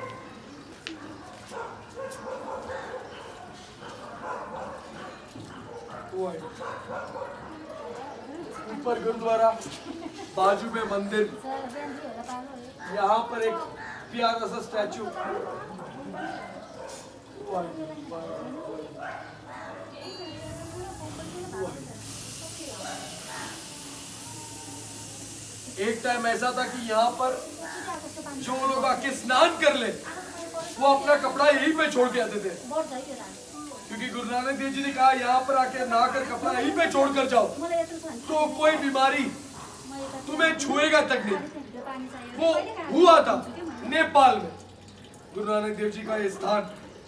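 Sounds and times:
people talking indistinctly: 0.6s - 47.0s
steady hiss: 20.4s - 41.4s.

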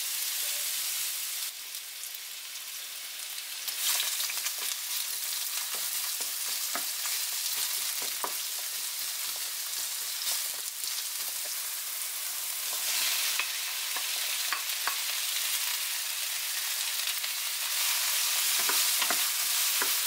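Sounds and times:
onions sizzling in oil: 0.0s - 20.0s.

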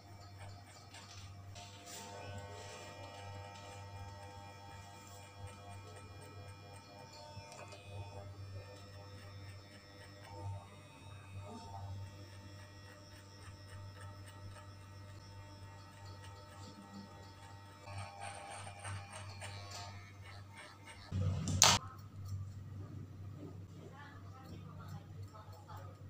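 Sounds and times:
electric hair clipper buzzing: 0.0s - 21.8s
faint background music: 0.0s - 26.0s.

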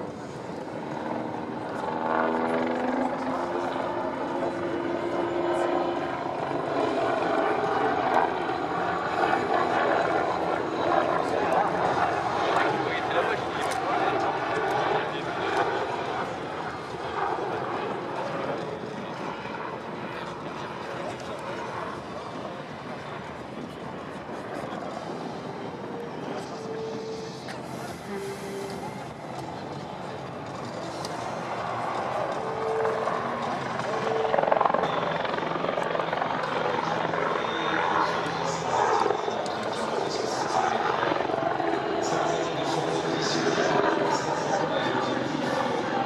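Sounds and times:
helicopter rotor and turbine: 0.0s - 46.0s
people's voices: 2.6s - 46.0s.

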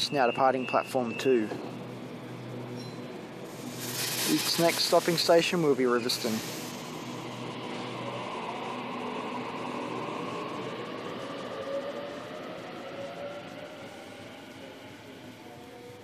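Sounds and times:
wheel and rail noise: 0.0s - 16.0s
electric train motor whine: 1.4s - 16.0s.

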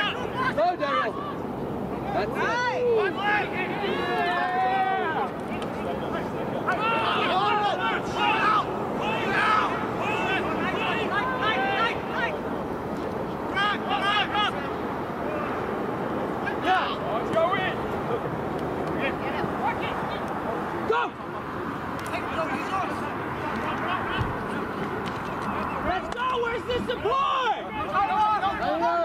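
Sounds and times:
outdoor background noise: 0.0s - 29.0s
players and spectators shouting: 0.0s - 29.0s.

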